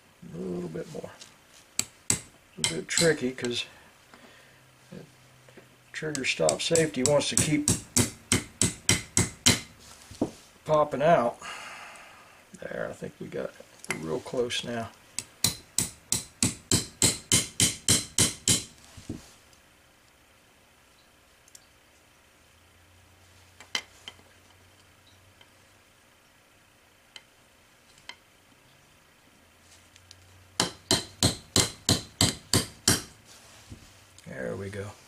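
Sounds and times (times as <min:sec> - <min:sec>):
hammer tapping steel pin: 0:01.8 - 0:03.6, 0:06.1 - 0:09.7, 0:15.2 - 0:18.7, 0:30.6 - 0:33.1.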